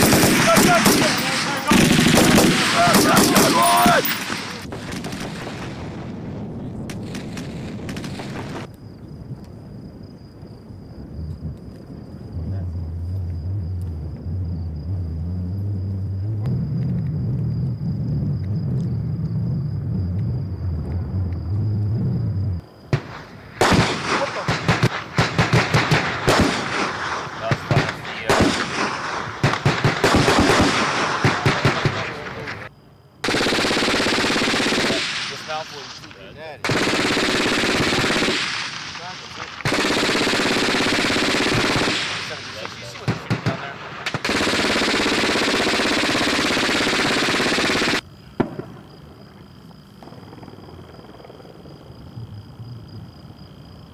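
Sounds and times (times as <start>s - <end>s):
automatic gunfire bursts: 0.0s - 5.7s, 7.0s - 8.7s, 23.6s - 32.2s, 33.2s - 36.0s, 36.6s - 48.0s
faint high whine: 8.7s - 23.5s
low rumble: 9.7s - 22.6s.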